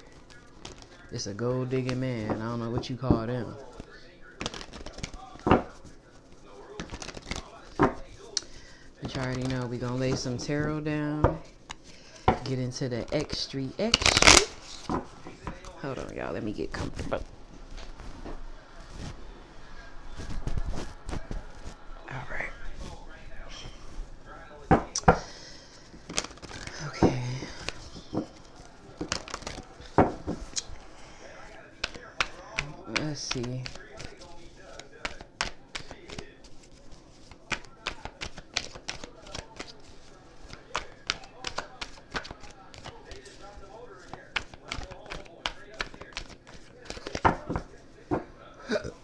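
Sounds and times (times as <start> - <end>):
card slaps: 4.4 - 5.9, 6.8 - 8.0, 13.8 - 15.7, 26.0 - 30.7, 31.8 - 43.4, 44.0 - 48.2
cards tapping on table: 29.0 - 30.5, 34.8 - 36.2, 40.4 - 43.3.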